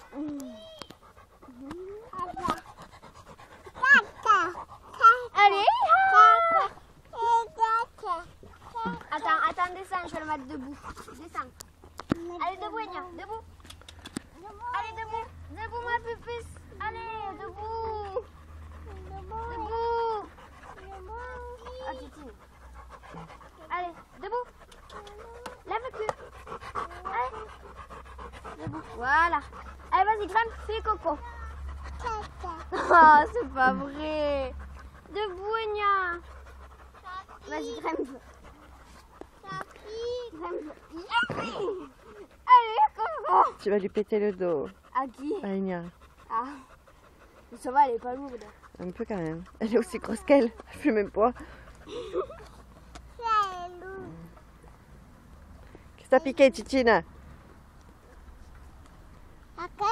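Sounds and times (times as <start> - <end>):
dog panting: 0.0 - 59.9.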